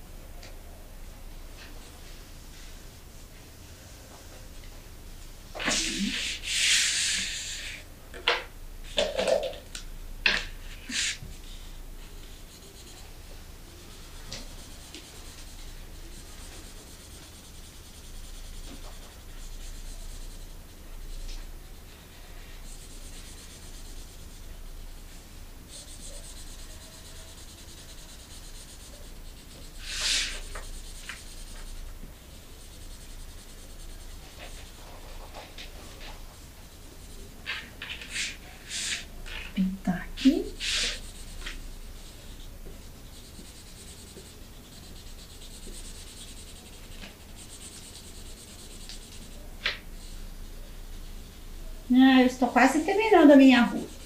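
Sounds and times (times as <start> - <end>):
markers scratching on paper: 5.6 - 7.8, 8.9 - 9.6, 10.3 - 54.0.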